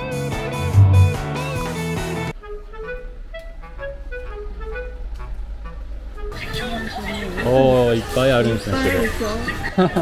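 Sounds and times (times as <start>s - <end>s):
guitar music: 0.0s - 5.4s
soft melodic background music: 0.7s - 9.0s
low rumble of traffic: 2.2s - 10.0s.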